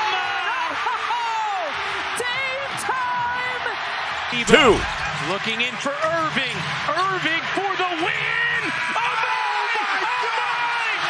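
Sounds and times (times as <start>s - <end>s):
crowd cheering: 4.1s - 5.5s
announcer yelling excitedly: 4.4s - 5.0s.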